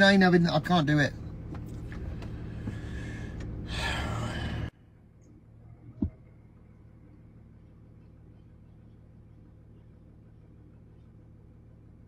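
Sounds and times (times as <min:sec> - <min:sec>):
low rumble inside car cabin: 0:00.0 - 0:12.0
heavy breath out: 0:02.3 - 0:04.7.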